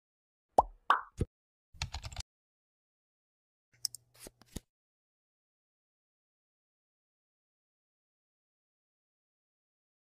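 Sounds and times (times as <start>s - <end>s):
keyboard typing clicks: 1.8s - 2.2s.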